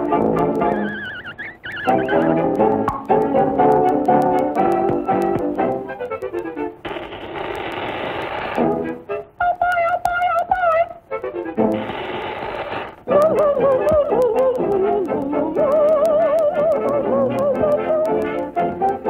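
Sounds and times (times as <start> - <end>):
cartoon music with brass notes: 0.0 - 6.8, 8.6 - 9.4, 10.2 - 12.0, 13.1 - 19.0
steady hissing: 0.0 - 19.0
warbling melody line: 0.6 - 3.7.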